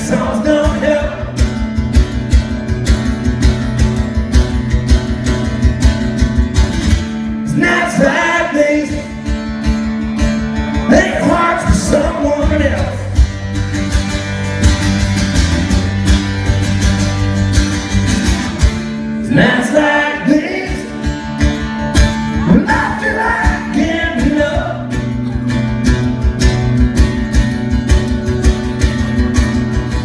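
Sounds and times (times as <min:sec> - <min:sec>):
acoustic guitar strumming: 0:00.0 - 0:30.0
person singing: 0:22.2 - 0:25.5.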